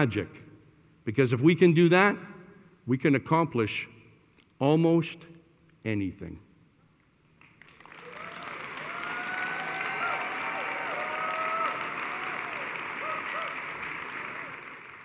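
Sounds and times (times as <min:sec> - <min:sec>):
audience applause: 0:07.6 - 0:15.0.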